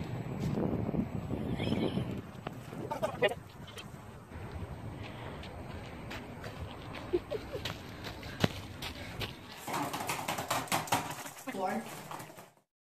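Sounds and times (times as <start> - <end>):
wind rumbling on microphone: 0.0 - 7.5.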